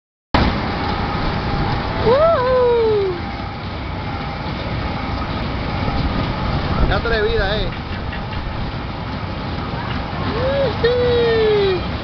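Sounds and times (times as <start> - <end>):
kiddie ride mechanical rumble: 0.4 - 12.0.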